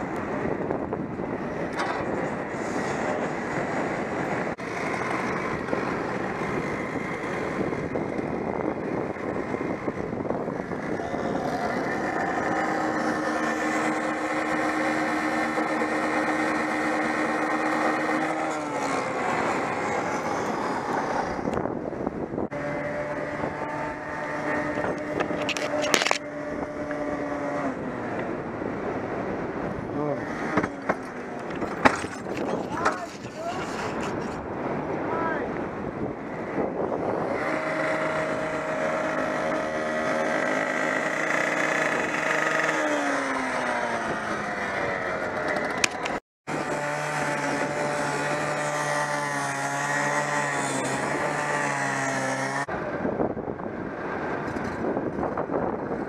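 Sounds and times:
small gasoline engine running: 0:02.8 - 0:21.5, 0:37.1 - 0:52.8.

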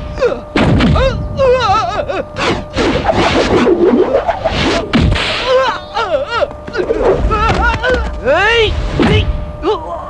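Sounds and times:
man crying in pain: 0:00.1 - 0:02.7, 0:05.4 - 0:08.4
punch impact: 0:04.8 - 0:05.4.

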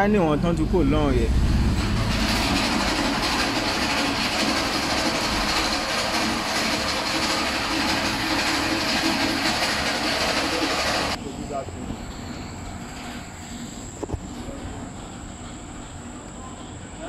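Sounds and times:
machine motor running: 0:01.2 - 0:11.2.

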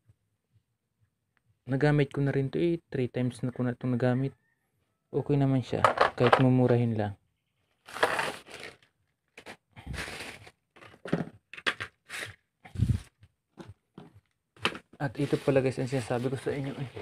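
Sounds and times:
plastic tool case closing: 0:05.8 - 0:06.5, 0:10.2 - 0:12.0
blister packs rustling: 0:07.8 - 0:12.4.

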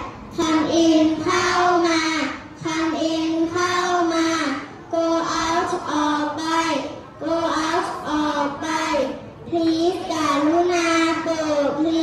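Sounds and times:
children chanting together: 0:00.0 - 0:12.0.

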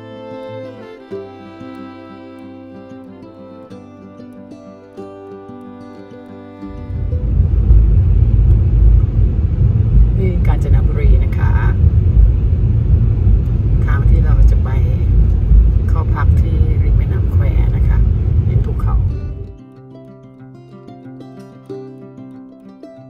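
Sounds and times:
road and wind rumble inside car: 0:06.7 - 0:19.5
voices: 0:09.9 - 0:12.2, 0:13.5 - 0:19.6.

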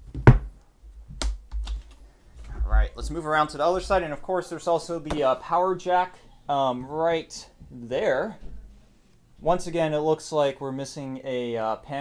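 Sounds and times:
dull low thumps: 0:02.4 - 0:04.1.

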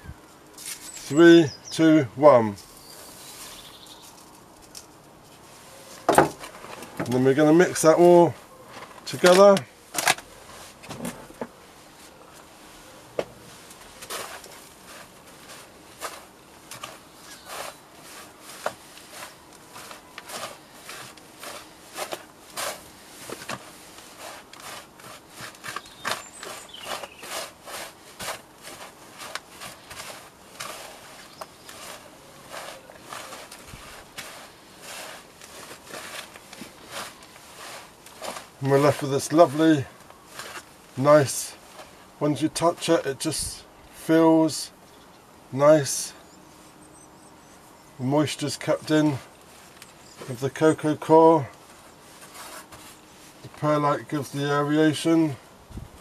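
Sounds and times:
hands rustling and scraping compost: 0:00.0 - 0:44.9, 0:45.5 - 0:56.0.

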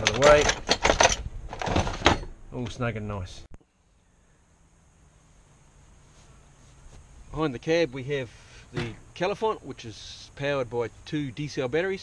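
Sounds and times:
faint steady hiss: 0:02.2 - 0:12.0.

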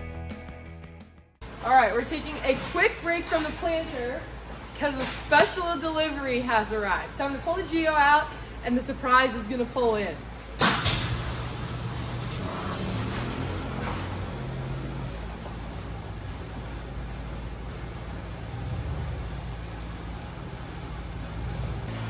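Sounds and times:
truck engine humming: 0:10.3 - 0:22.0.

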